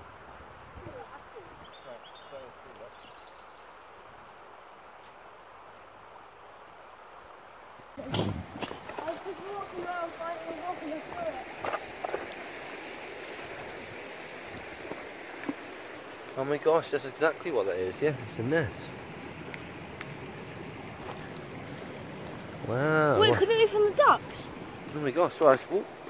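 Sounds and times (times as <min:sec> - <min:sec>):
stream running over rocks: 0:00.0 - 0:26.0
children's voices: 0:08.9 - 0:11.5.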